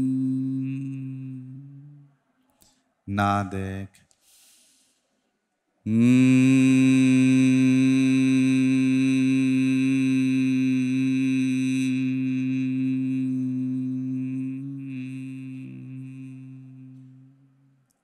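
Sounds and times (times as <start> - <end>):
man humming low note: 0.0 - 2.1, 5.9 - 17.7.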